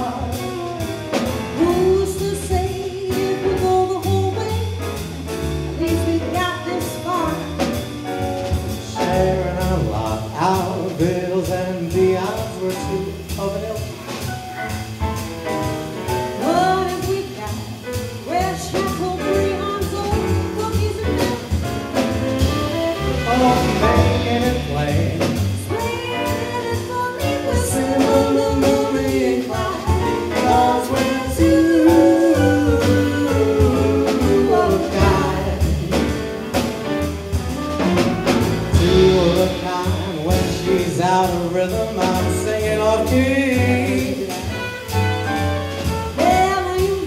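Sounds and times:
double bass: 0:00.0 - 0:47.0
drums: 0:00.0 - 0:47.0
piano: 0:00.0 - 0:47.0
wordless lead melody: 0:00.0 - 0:47.0.

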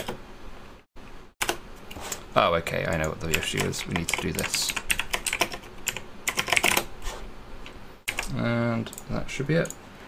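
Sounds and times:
typing on computer keyboard: 0:03.0 - 0:06.9.

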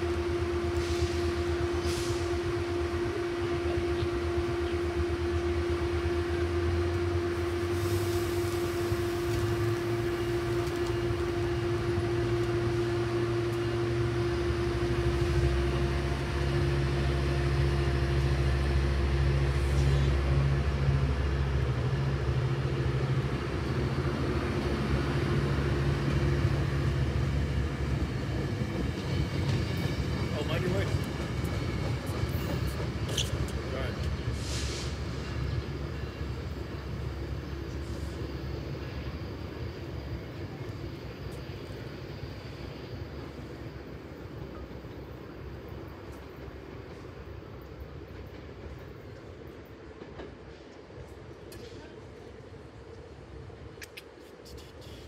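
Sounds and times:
diesel locomotive engine rumble: 0:00.0 - 0:55.0
train rolling past: 0:00.0 - 0:55.0.

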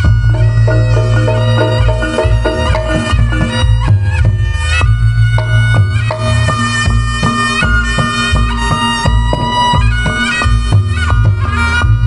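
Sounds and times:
drums and gongs beat: 0:00.0 - 0:12.0
reed shawm melody: 0:00.0 - 0:12.0.

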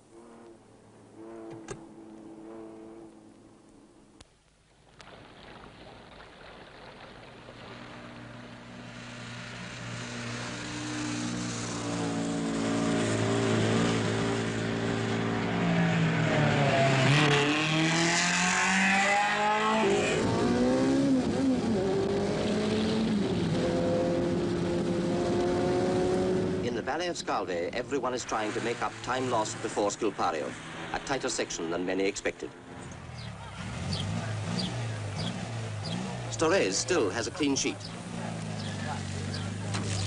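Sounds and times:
rally car engine passing: 0:00.0 - 0:03.9, 0:07.5 - 0:40.0.

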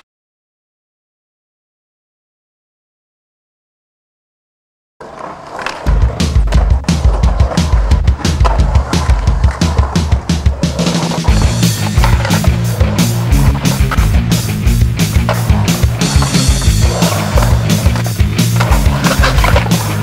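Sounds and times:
driving drum beat: 0:05.8 - 0:20.0
stepping bass line: 0:05.9 - 0:20.0.

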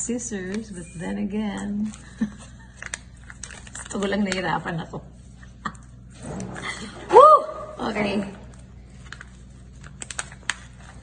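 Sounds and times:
plastic pouch crackling open: 0:01.8 - 0:04.6, 0:08.4 - 0:11.0.

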